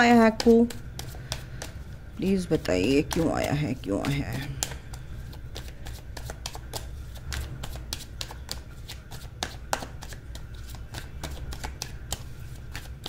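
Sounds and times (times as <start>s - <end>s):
cards being shuffled: 0.1s - 13.0s.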